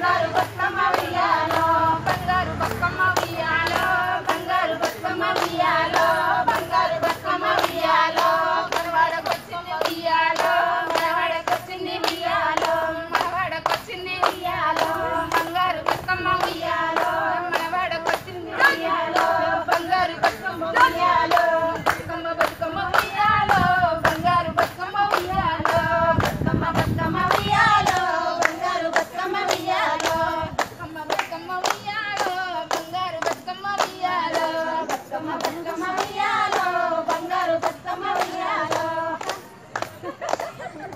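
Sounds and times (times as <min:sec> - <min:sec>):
hand claps: 0:00.0 - 0:40.9
women singing together: 0:00.0 - 0:40.9.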